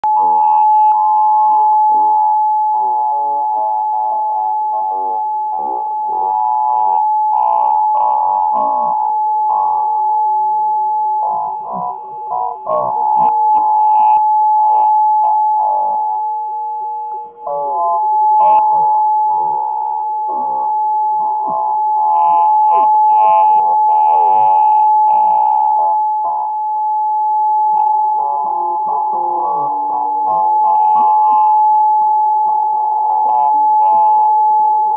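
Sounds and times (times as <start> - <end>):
piercing sine-like tone: 0.0 - 34.9.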